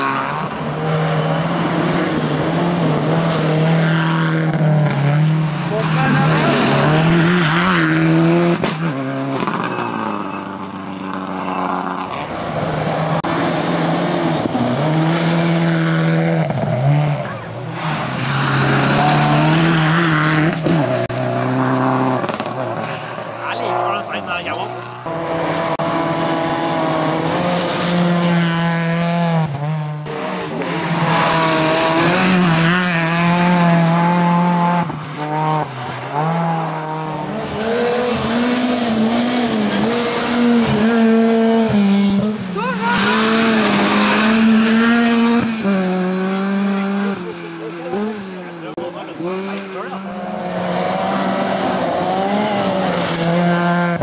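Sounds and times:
rally car engines revving: 0.0s - 54.0s.

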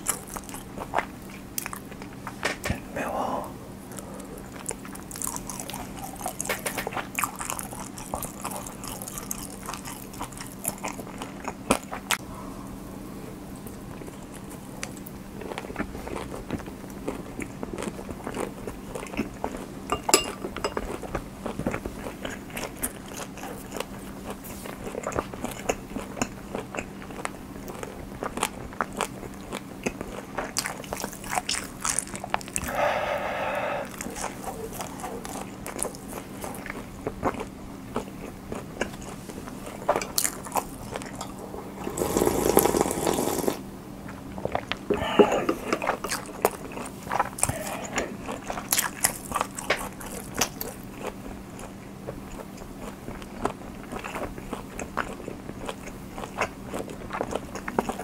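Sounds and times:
faint low hum: 0.0s - 58.0s
wet mouth clicks chewing: 4.4s - 12.2s, 44.1s - 58.0s
noodles being slurped: 41.7s - 43.6s.

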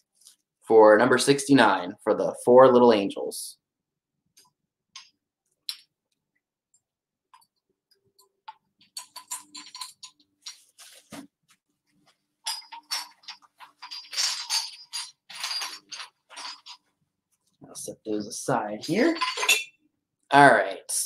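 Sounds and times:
ceramic figurines clinking: 8.8s - 10.7s, 12.4s - 16.9s, 18.8s - 19.8s.

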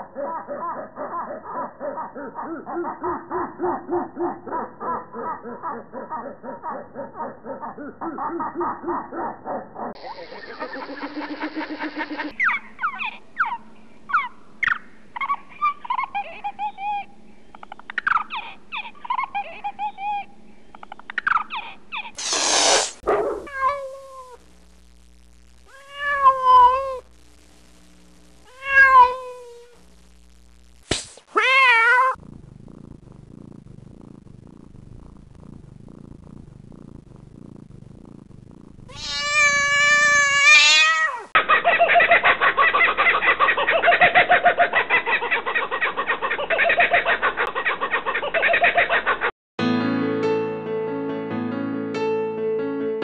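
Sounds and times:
cat meowing: 23.2s - 24.4s, 25.7s - 27.0s, 28.5s - 29.8s, 31.3s - 32.2s, 38.9s - 41.3s.

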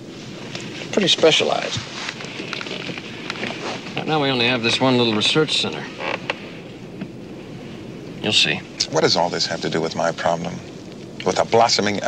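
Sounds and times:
jet aircraft cabin rushing noise: 0.0s - 12.0s.

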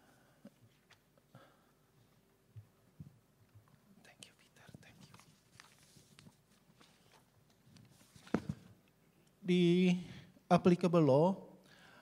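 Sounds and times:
soft rustles: 2.0s - 8.8s.

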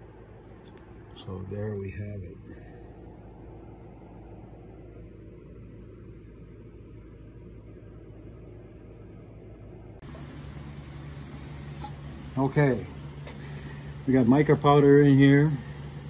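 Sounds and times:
workshop hum and hiss: 0.0s - 16.0s.

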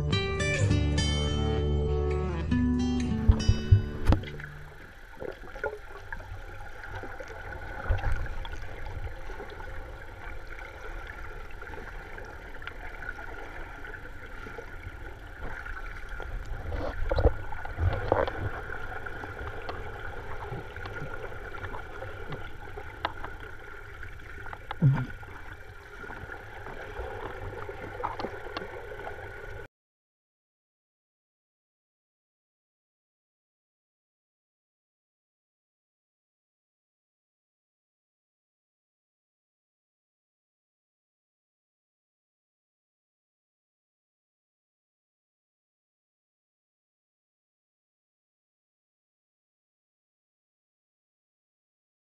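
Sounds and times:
low thumps of swim strokes: 3.2s - 29.7s
muffled underwater water rushing: 3.2s - 29.7s.

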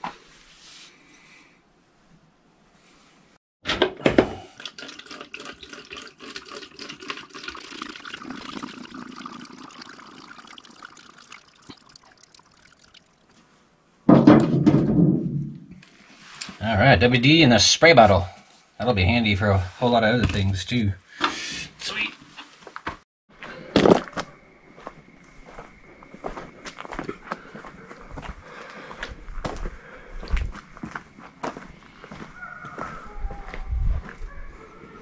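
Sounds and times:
liquid trickling and glugging: 4.2s - 13.4s.

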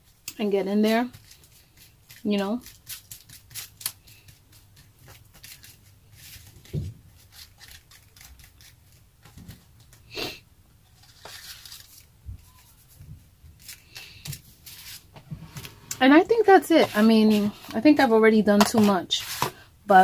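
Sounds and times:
hands rustling paper: 0.9s - 10.1s, 10.9s - 19.6s.

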